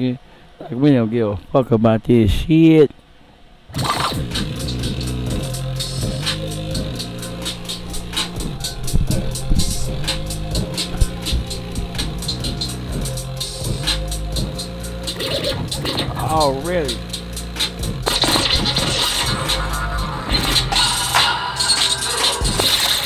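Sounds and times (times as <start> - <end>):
record scratching: 3.7 - 13.0, 15.0 - 23.0
hip-hop beat: 3.8 - 23.0.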